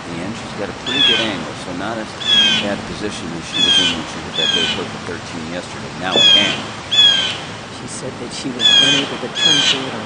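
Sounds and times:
bird calling: 0:00.0 - 0:10.0.

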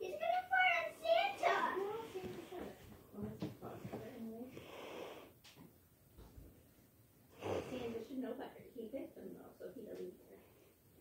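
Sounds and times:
child breathy exhale: 0:07.4 - 0:08.0.

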